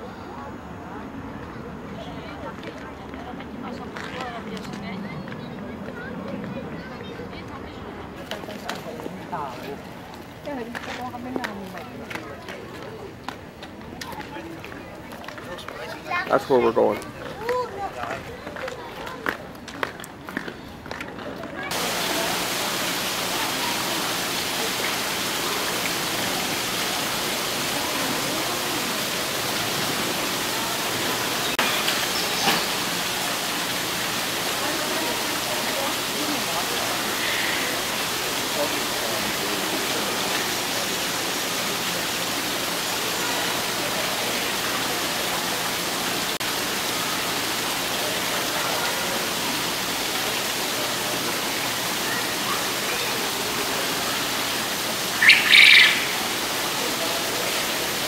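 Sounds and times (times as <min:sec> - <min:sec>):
running water: 0:21.6 - 0:58.0
high chirp: 0:55.2 - 0:56.2.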